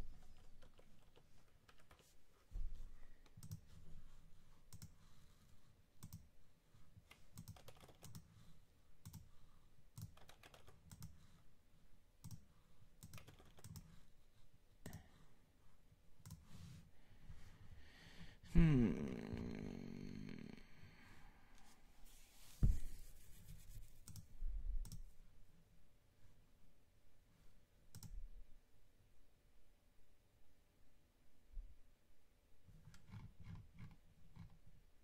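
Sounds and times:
typing on computer keyboard: 0:00.2 - 0:02.1, 0:06.0 - 0:06.3, 0:07.1 - 0:08.4, 0:10.0 - 0:11.3, 0:13.0 - 0:14.0
soft thump: 0:22.6 - 0:23.0.

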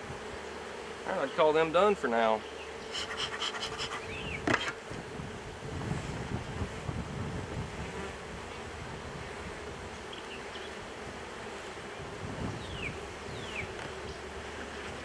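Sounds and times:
bees buzzing: 0:00.0 - 0:15.0.

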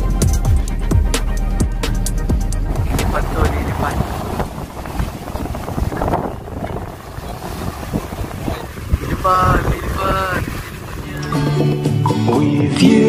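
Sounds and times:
wind buffeting microphone: 0:02.3 - 0:12.0.

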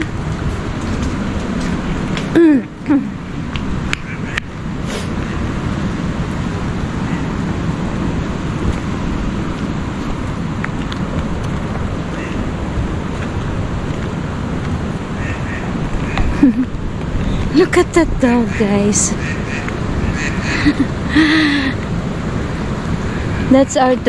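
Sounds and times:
wind on microphone: 0:00.0 - 0:24.0.

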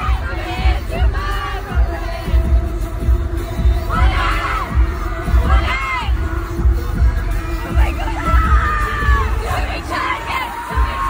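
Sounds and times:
heavy bass drum beat: 0:00.0 - 0:11.0
high voices singing: 0:00.0 - 0:11.0.

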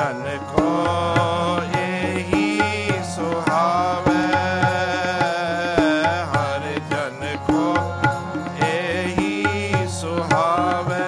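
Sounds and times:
harmonium chords: 0:00.0 - 0:11.0
man singing devotional song: 0:00.0 - 0:11.0.

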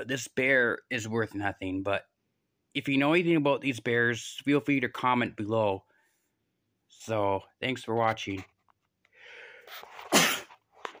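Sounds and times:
person sneezing: 0:09.7 - 0:10.6.

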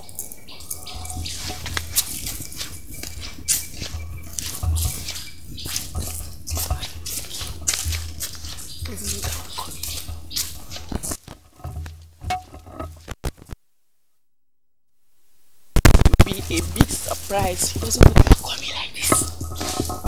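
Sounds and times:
footsteps on dirt path: 0:00.2 - 0:13.6, 0:15.8 - 0:20.0
low microphone rumble: 0:00.6 - 0:13.1, 0:15.8 - 0:20.0.

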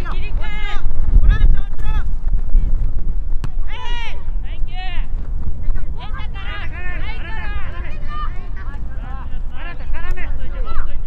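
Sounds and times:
wind rumble on microphone: 0:00.0 - 0:11.0
young players shouting: 0:05.8 - 0:11.0.

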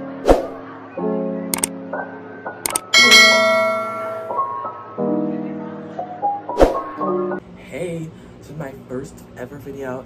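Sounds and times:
soft piano music: 0:00.0 - 0:07.4
notification bell chime: 0:02.9 - 0:04.5.

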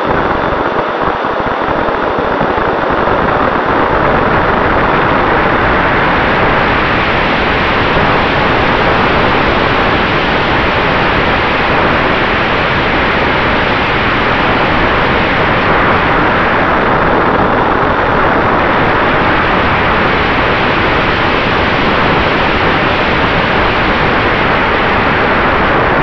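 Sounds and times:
electric ducted fan whine: 0:00.0 - 0:26.0
rushing airflow over camera: 0:00.0 - 0:26.0.

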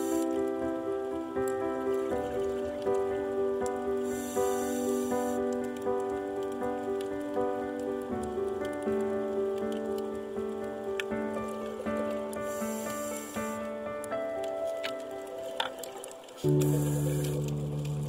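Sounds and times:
sustained chord music: 0:00.0 - 0:18.0.

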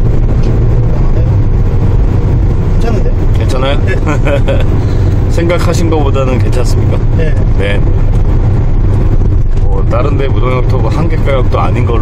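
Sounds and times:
minivan engine and road noise: 0:00.0 - 0:12.0.

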